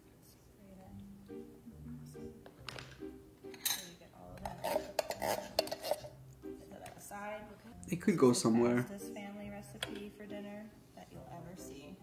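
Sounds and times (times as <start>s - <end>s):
spoon clinking against bowl: 3.5s - 6.1s.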